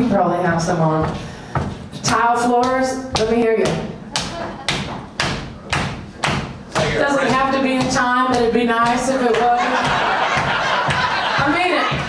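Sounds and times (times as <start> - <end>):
audience stomping on floor: 0.5 - 12.0
hand claps: 4.1 - 12.0.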